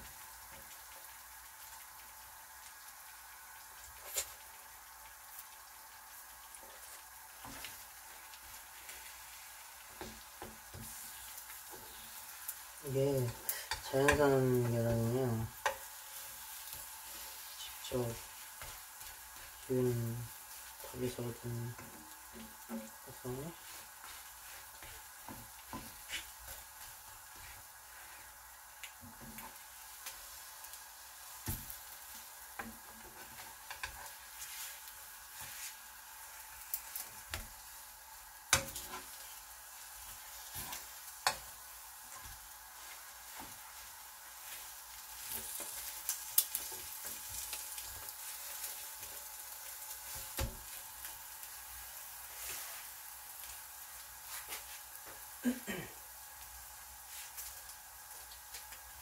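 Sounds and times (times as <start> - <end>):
toast sizzling in a pan: 0.0 - 59.0.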